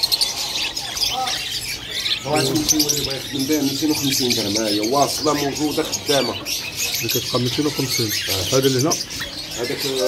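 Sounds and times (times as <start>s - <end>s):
budgerigars chattering: 0.0s - 10.0s.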